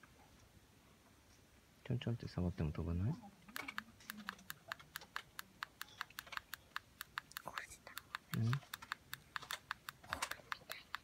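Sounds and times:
rapid light sharp clicks: 0:03.5 - 0:11.0.

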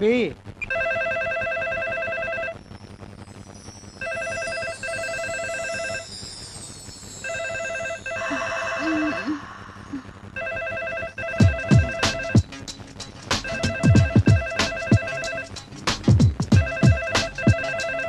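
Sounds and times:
telephone ringing: 0:00.6 - 0:02.7, 0:04.0 - 0:09.5, 0:10.3 - 0:12.5, 0:13.4 - 0:15.6, 0:16.6 - 0:18.0.

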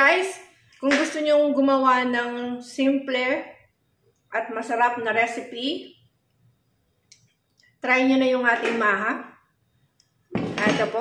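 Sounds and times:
woman speaking: 0:00.0 - 0:03.7, 0:04.3 - 0:06.0, 0:07.8 - 0:09.4, 0:10.4 - 0:11.0.

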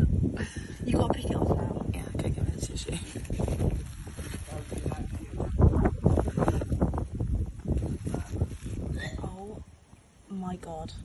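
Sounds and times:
rumbling on microphone: 0:00.0 - 0:09.7.

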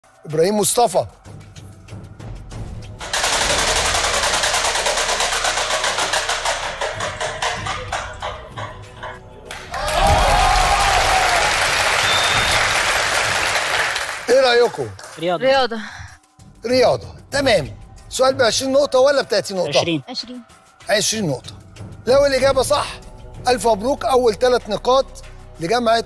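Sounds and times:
audience applause and cheering: 0:09.5 - 0:15.2.

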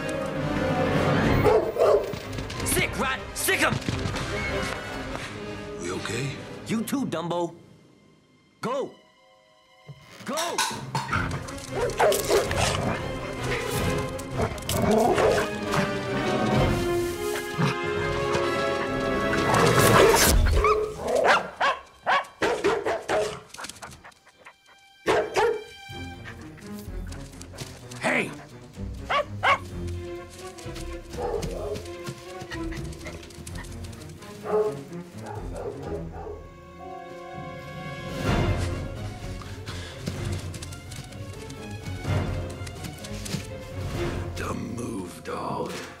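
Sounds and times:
film music: 0:00.0 - 0:46.0
dogs barking: 0:01.2 - 0:02.2, 0:11.0 - 0:16.0, 0:17.5 - 0:26.6, 0:27.5 - 0:36.5
dog barking: 0:01.4 - 0:02.2, 0:11.7 - 0:12.7, 0:20.0 - 0:24.1, 0:25.0 - 0:25.7, 0:29.0 - 0:29.7, 0:31.1 - 0:31.9, 0:34.4 - 0:36.5.

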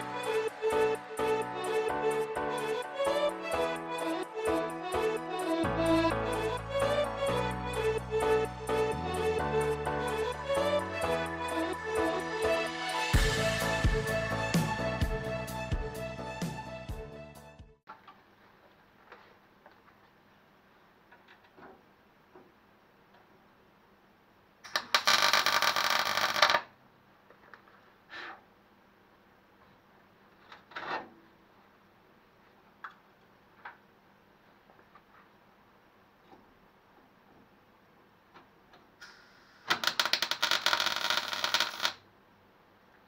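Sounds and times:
faint hiss: 0:38.9 - 0:39.7
welding arc crackling: 0:39.3 - 0:42.0.

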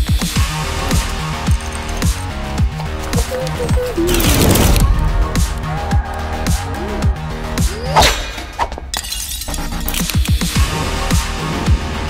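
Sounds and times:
bass-heavy electronic beat: 0:00.0 - 0:07.9.

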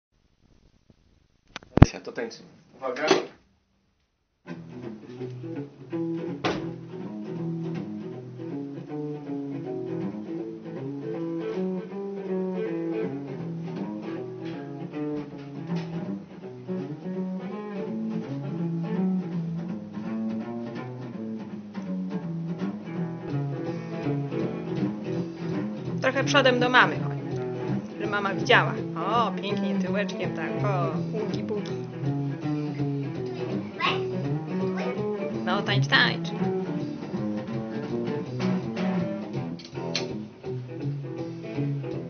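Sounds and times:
guitar playing boogie: 0:04.5 - 0:42.0.

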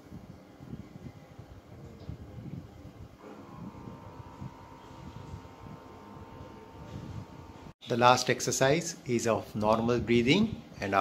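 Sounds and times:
thin steady high whine: 0:03.0 - 0:07.8.

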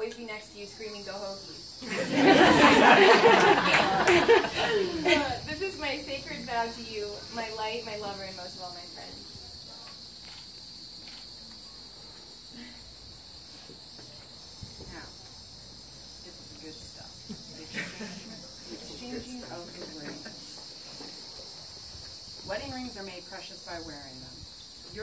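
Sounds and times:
insects chirring: 0:00.0 - 0:25.0.

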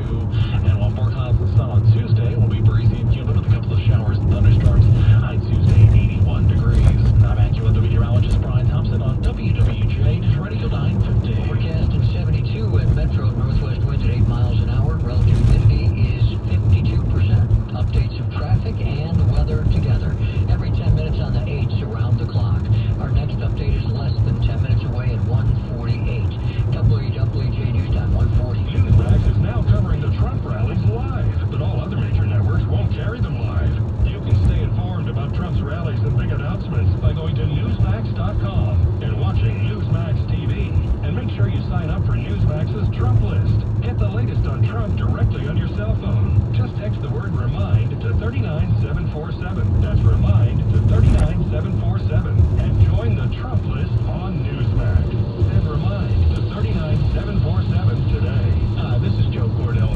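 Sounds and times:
car road and engine noise: 0:00.0 - 0:59.9
voice from car radio: 0:00.0 - 0:59.9.

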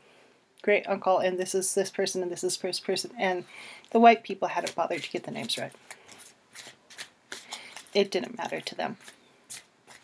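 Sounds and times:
cards being shuffled: 0:04.6 - 0:10.0.

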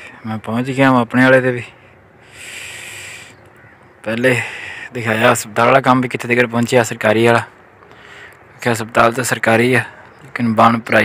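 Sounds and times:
bird harsh call: 0:02.2 - 0:04.9.

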